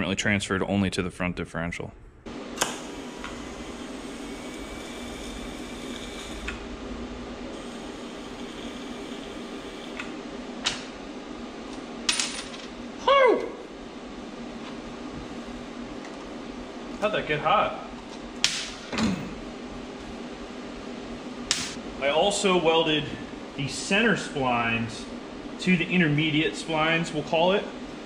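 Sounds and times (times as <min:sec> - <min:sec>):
steady shop hum: 0:00.0 - 0:28.0.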